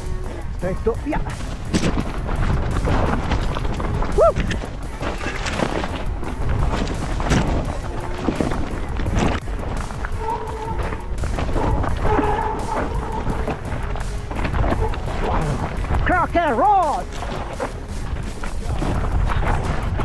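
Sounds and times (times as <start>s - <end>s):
wind rumble on microphone: 0.0s - 16.4s, 17.0s - 20.0s
bike knocking and rattling: 0.0s - 20.0s
music: 0.0s - 20.0s.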